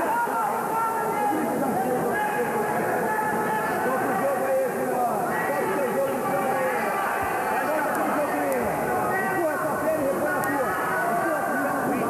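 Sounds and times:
crowd babble: 0:00.0 - 0:12.0.

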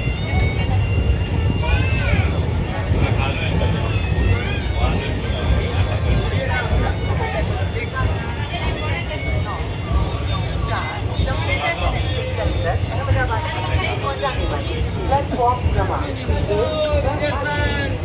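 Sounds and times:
train coach rumbling: 0:00.0 - 0:18.0
voices on platform: 0:00.0 - 0:18.0.

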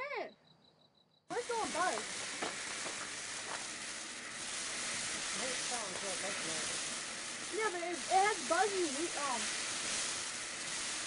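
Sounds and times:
firework fountain hissing: 0:01.3 - 0:11.0.

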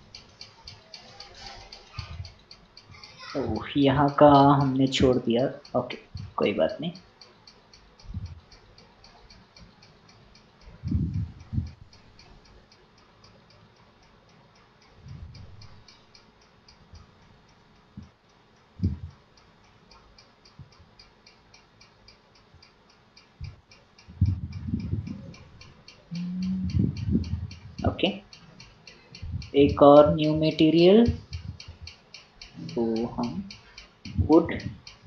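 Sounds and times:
faint steady ticking: 0:00.0 - 0:35.0
low thumps: 0:10.7 - 0:12.0, 0:18.8 - 0:19.2, 0:23.4 - 0:28.2, 0:29.2 - 0:31.9, 0:32.5 - 0:34.8.

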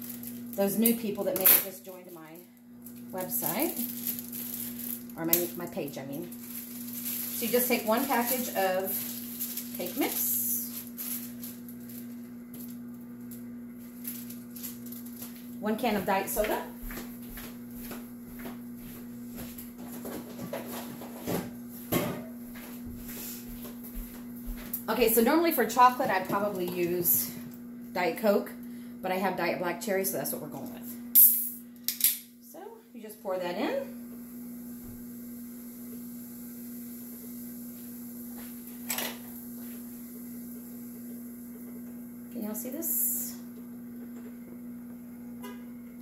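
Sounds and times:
ice cream maker humming: 0:00.0 - 0:21.9, 0:22.5 - 0:31.9, 0:32.5 - 0:46.0
ice cream maker motor hum: 0:32.9 - 0:46.0.

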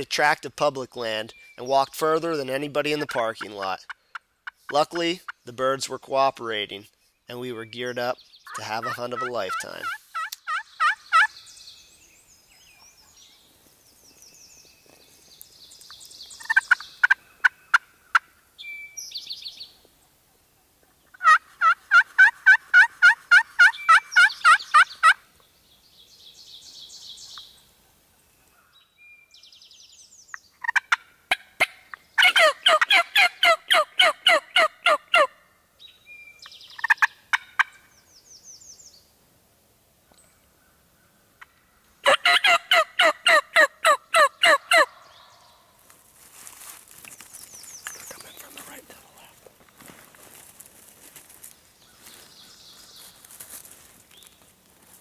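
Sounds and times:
wild turkey yelping: 0:08.4 - 0:11.4, 0:16.4 - 0:18.3, 0:21.1 - 0:25.2, 0:30.6 - 0:35.4, 0:36.8 - 0:37.8, 0:41.4 - 0:45.6
high bird chirping: 0:47.3 - 0:49.4.

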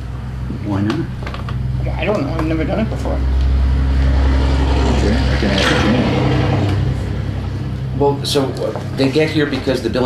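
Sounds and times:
motor vehicle passing: 0:00.0 - 0:10.0.

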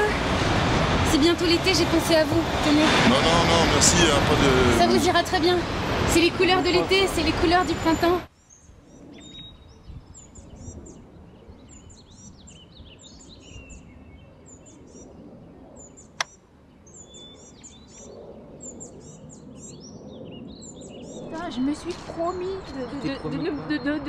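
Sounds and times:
outdoor background noise: 0:00.0 - 0:24.0
small birds chirping: 0:06.5 - 0:24.0
sharp click: 0:16.2 - 0:16.4.

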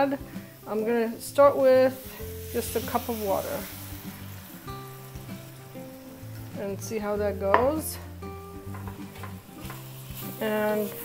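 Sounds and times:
background music: 0:00.0 - 0:11.0
water pouring into pot: 0:01.9 - 0:06.2.

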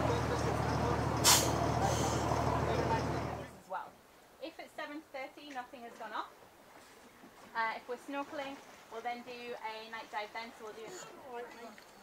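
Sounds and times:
boat engine humming: 0:00.0 - 0:03.6
water noise: 0:00.0 - 0:03.6
wind: 0:00.0 - 0:12.0
short sharp hiss: 0:01.2 - 0:02.4.

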